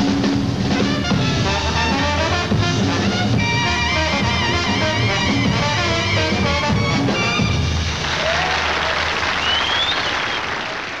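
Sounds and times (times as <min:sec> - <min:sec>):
jazz band playing: 0:00.0 - 0:08.4
audience applause: 0:07.6 - 0:11.0.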